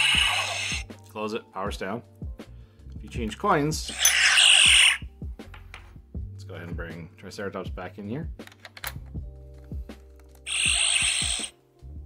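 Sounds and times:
harsh hissing electronic sound: 0:00.0 - 0:00.8, 0:03.9 - 0:05.0, 0:10.5 - 0:11.5
background music: 0:00.0 - 0:12.0.

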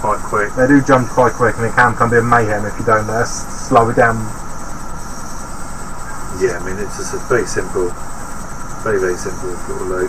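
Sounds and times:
servo motors humming: 0:00.0 - 0:10.0.

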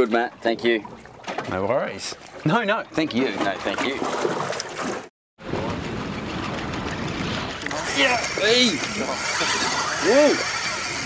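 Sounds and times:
wind: 0:00.0 - 0:11.0
water rushing: 0:02.1 - 0:11.0
boat engine running: 0:05.4 - 0:11.0.

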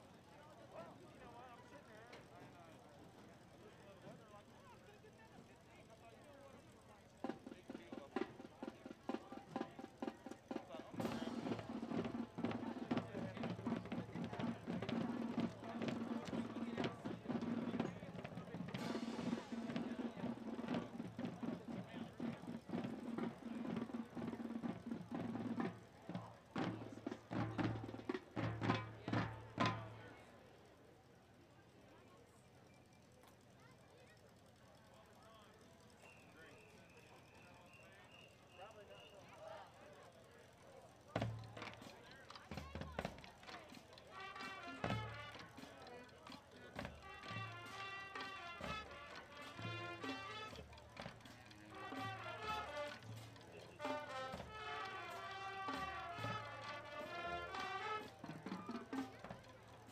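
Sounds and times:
marching band holding chords: 0:07.2 - 0:30.2, 0:41.2 - 0:59.9.

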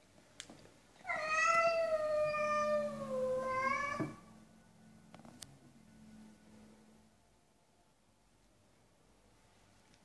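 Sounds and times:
cat yowling: 0:01.1 - 0:04.2.

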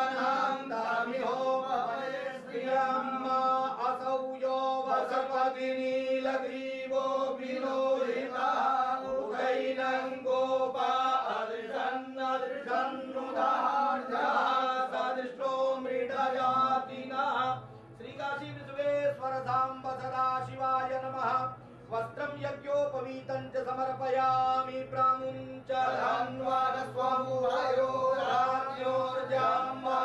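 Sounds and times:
men chanting mantras: 0:00.0 - 0:30.0.

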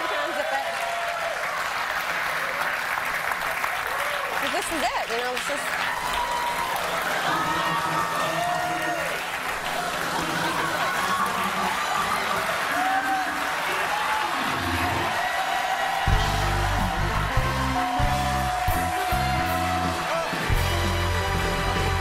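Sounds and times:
audience cheering and applauding: 0:00.0 - 0:22.0
whoops: 0:03.8 - 0:04.4, 0:05.8 - 0:20.5
band playing with heavy bass: 0:16.1 - 0:22.0.

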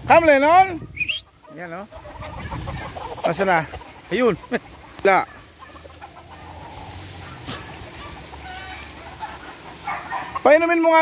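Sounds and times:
roosters clucking and calling: 0:00.0 - 0:11.0.

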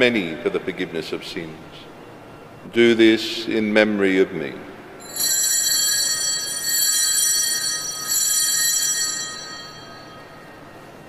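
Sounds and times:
altar bells ringing: 0:05.0 - 0:11.0.

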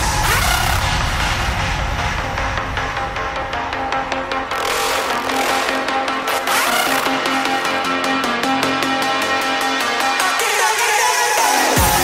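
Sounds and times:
low rumble: 0:00.0 - 0:04.6.

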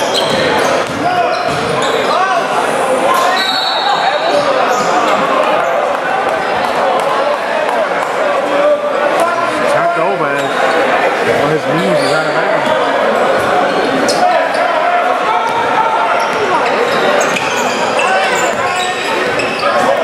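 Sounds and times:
voices echoing in gym: 0:00.0 - 0:20.0.

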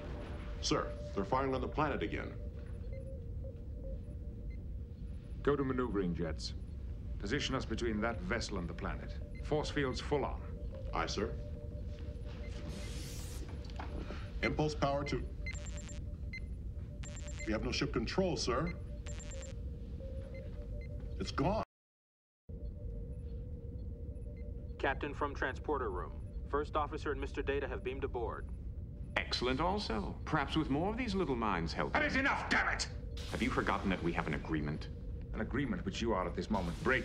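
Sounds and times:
high electronic beeps: 0:00.0 - 0:21.6
low background hum: 0:00.0 - 0:21.6, 0:22.5 - 0:37.0
short electronic tones: 0:15.2 - 0:17.8, 0:18.5 - 0:20.9
low rumbling hum: 0:22.5 - 0:31.9.

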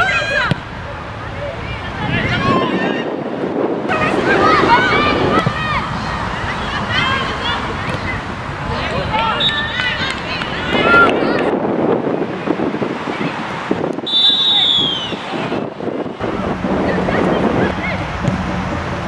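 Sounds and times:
women shouting and calling: 0:00.0 - 0:00.6, 0:03.9 - 0:08.3, 0:08.9 - 0:11.6
wind on microphone: 0:01.6 - 0:09.2, 0:09.8 - 0:19.0.

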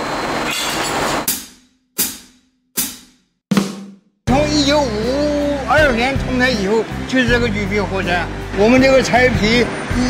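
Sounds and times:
drum and cymbal hits: 0:01.2 - 0:06.6.

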